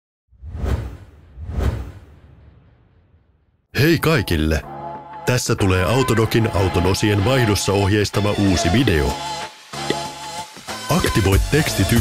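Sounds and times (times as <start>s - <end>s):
whoosh sound effects: 0.3s - 3.4s.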